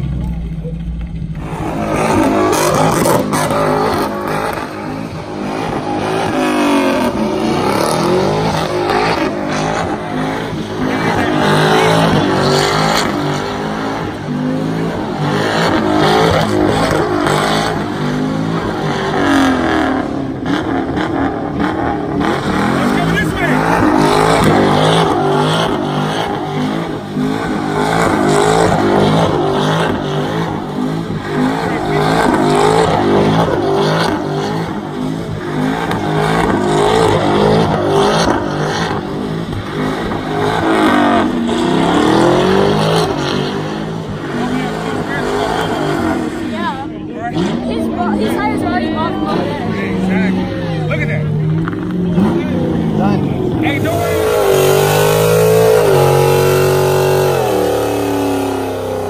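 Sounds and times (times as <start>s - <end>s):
car engine revving: 0.0s - 59.0s
tyres squealing on asphalt: 0.0s - 59.0s.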